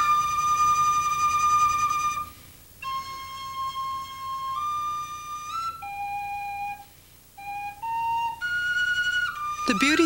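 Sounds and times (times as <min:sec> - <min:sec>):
solo flute: 0:00.0 - 0:10.0
breath: 0:06.8 - 0:07.3.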